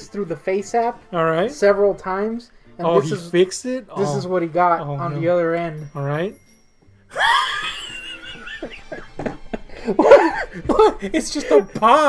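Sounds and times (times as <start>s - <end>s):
man crying out in shock: 7.1s - 8.0s
man laughing: 7.1s - 11.7s.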